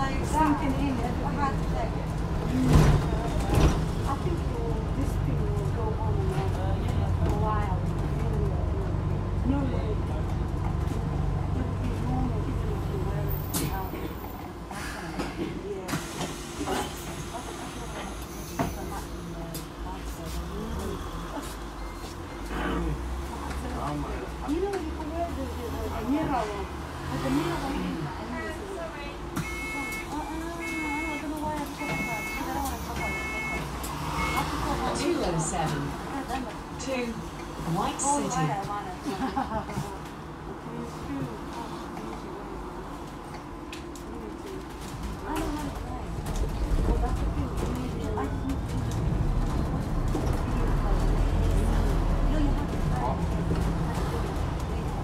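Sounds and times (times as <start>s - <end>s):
bus engine rumble: 0.0s - 55.0s
faint passenger voices: 0.0s - 55.0s.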